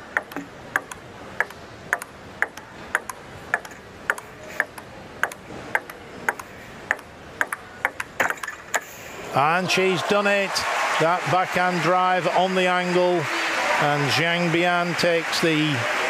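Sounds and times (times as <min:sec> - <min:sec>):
table tennis ball clicking: 0:00.1 - 0:08.9.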